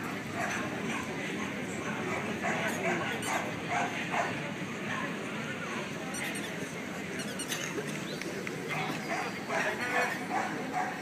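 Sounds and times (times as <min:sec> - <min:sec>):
crowd chatter: 0:00.0 - 0:11.0
dog barking: 0:02.1 - 0:04.4, 0:08.8 - 0:11.0.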